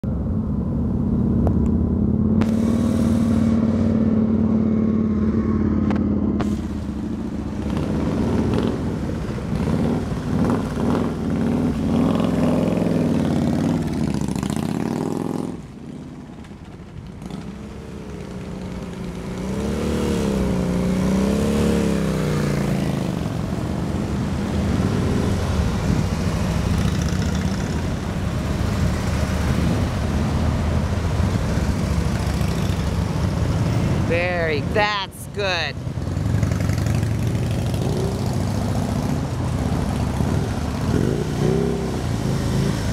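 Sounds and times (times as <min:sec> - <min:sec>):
motorcycle engines at low revs: 0:00.1 - 0:42.9.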